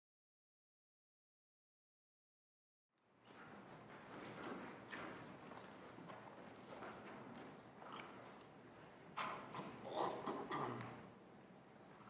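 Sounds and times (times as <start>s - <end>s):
faint footsteps of man walking: 3.1s - 9.1s.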